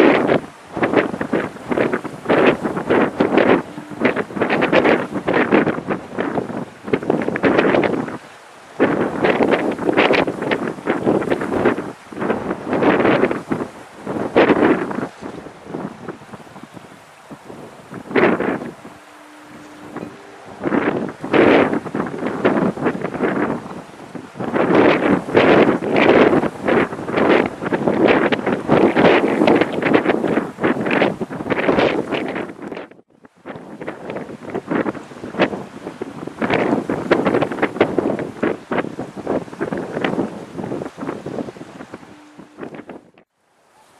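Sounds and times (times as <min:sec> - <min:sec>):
wind buffeting microphone: 0:00.0 - 0:43.2.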